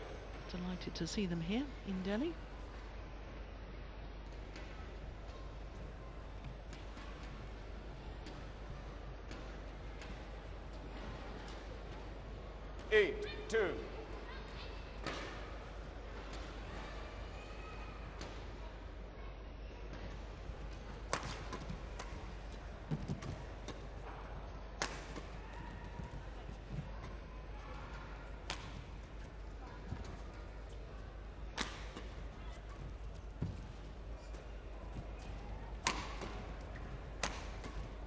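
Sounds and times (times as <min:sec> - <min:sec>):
rackets striking shuttlecock: 0:28.4 - 0:29.0, 0:31.4 - 0:32.3, 0:35.2 - 0:38.0
footsteps on court: 0:28.4 - 0:38.0.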